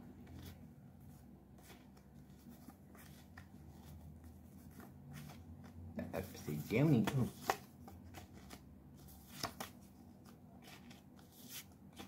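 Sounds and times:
playing cards snapping and rustling: 0:06.8 - 0:08.6, 0:09.2 - 0:09.8.

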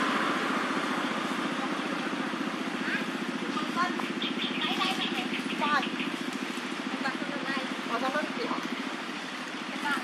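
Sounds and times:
small engine idling: 0:00.0 - 0:10.0
high gliding calls: 0:02.7 - 0:07.1.

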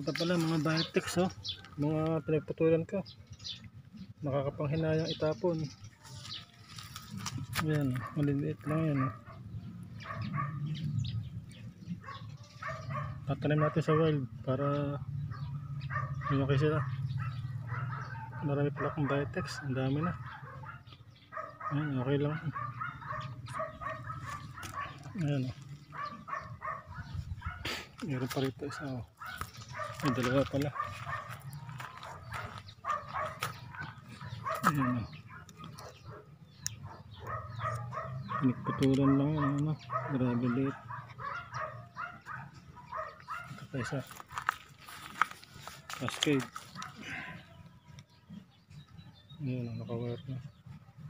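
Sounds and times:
birds chirping: 0:00.0 - 0:51.0
dog barking: 0:07.8 - 0:10.8, 0:11.9 - 0:14.3, 0:15.3 - 0:47.6.

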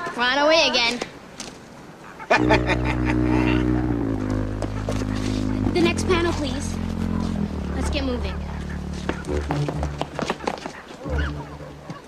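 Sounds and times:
man laughing: 0:02.3 - 0:03.7
low synthesizer chord: 0:02.4 - 0:10.1, 0:11.1 - 0:11.9.

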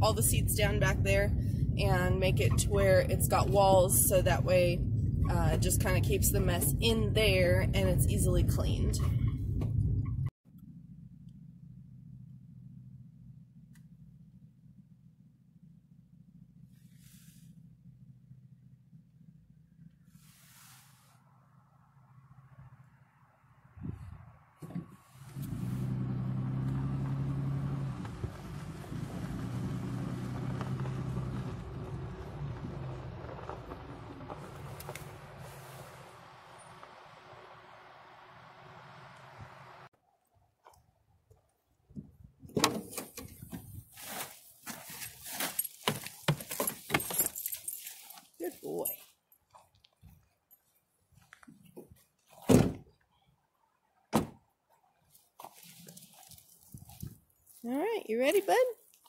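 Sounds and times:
car engine running: 0:00.0 - 0:39.9
rustling on hay and tarp: 0:20.2 - 0:21.2, 0:43.6 - 0:49.1, 0:55.1 - 0:59.0
harness clicking and jangling: 0:44.7 - 0:52.4
loud thump: 0:52.5 - 0:52.8, 0:54.1 - 0:54.4.

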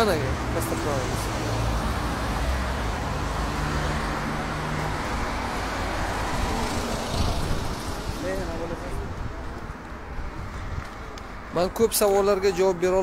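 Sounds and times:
road traffic noise: 0:00.0 - 0:13.0.

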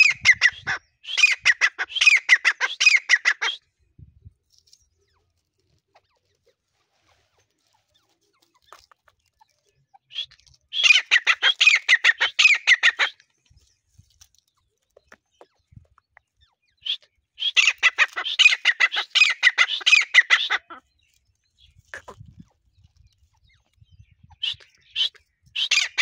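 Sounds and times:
partridge calling: 0:00.0 - 0:03.6, 0:07.1 - 0:13.6, 0:15.0 - 0:26.0.

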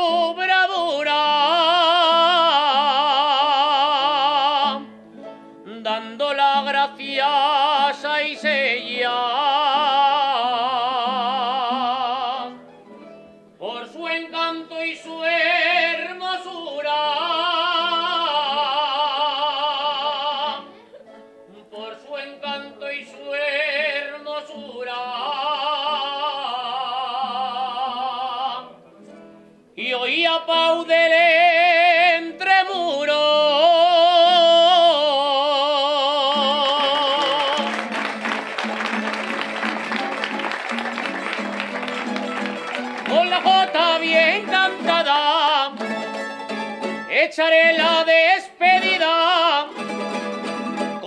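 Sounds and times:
person singing with vibrato: 0:00.0 - 0:12.7, 0:13.6 - 0:28.9, 0:29.8 - 0:38.0, 0:41.7 - 0:51.0
plucked and strummed strings: 0:00.0 - 0:29.8, 0:35.7 - 0:51.0.

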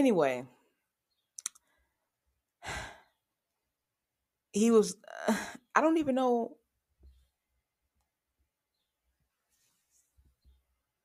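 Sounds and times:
breathy sigh: 0:02.6 - 0:03.2.

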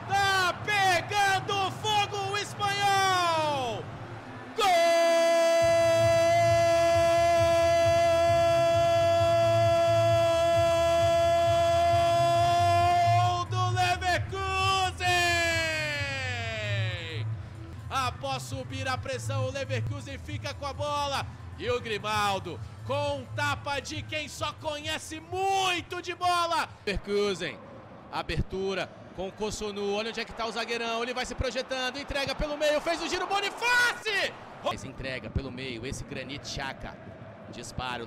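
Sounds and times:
commentator shouting excitedly: 0:00.0 - 0:03.8, 0:04.6 - 0:17.0, 0:31.5 - 0:34.8
long held goal cry: 0:04.5 - 0:16.1.

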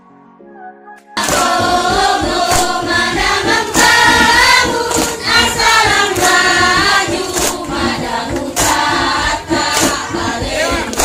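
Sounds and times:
group of voices singing: 0:01.2 - 0:11.0.

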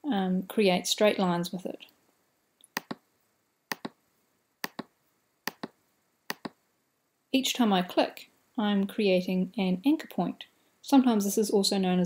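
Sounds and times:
mouse button clicks: 0:02.7 - 0:03.0, 0:04.6 - 0:04.9, 0:05.5 - 0:06.6.

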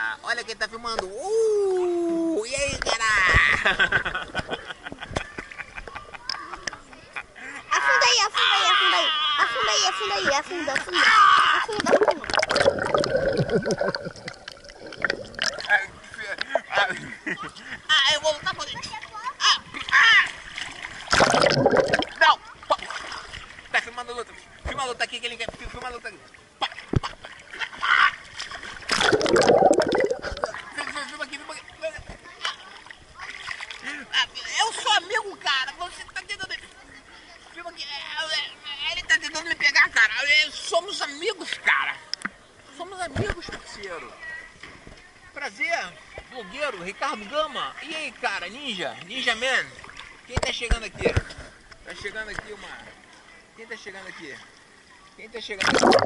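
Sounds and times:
water splashing and sloshing: 0:09.7 - 0:17.6, 0:18.5 - 0:38.1, 0:47.2 - 0:56.0.

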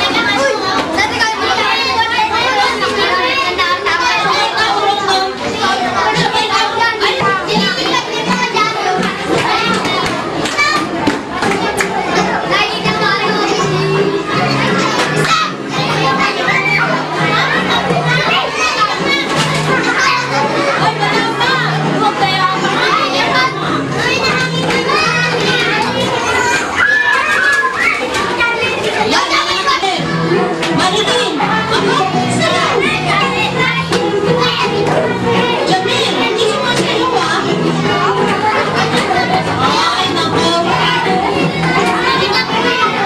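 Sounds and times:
children talking and calling out: 0:00.0 - 0:43.0
children squealing: 0:26.1 - 0:28.5.

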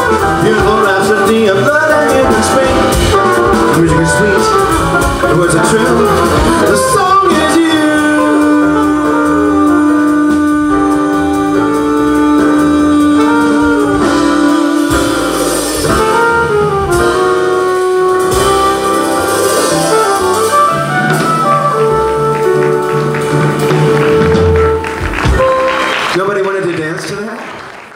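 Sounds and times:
jazz band playing: 0:00.0 - 0:27.8
man singing long note: 0:05.6 - 0:15.6.

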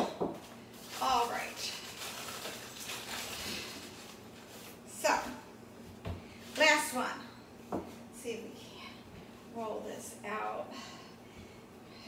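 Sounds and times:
paper bag rustling: 0:00.7 - 0:04.9.

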